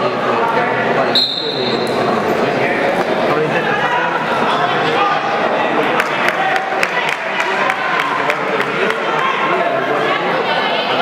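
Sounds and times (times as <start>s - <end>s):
crowd chatter: 0.0s - 11.0s
referee's whistle blast: 1.1s - 1.9s.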